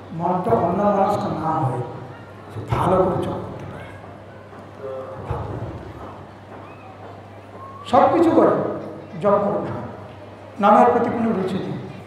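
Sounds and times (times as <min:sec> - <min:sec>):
low electrical hum: 0:00.0 - 0:12.0
man speaking into a microphone: 0:00.1 - 0:02.0, 0:02.6 - 0:03.7, 0:07.9 - 0:10.0, 0:10.6 - 0:12.0.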